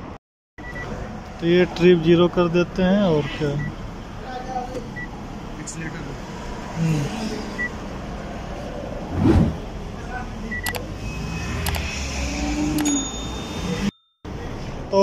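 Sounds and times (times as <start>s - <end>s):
high dashboard beeps: 0.6s - 1.0s, 7.6s - 7.8s, 10.5s - 14.2s.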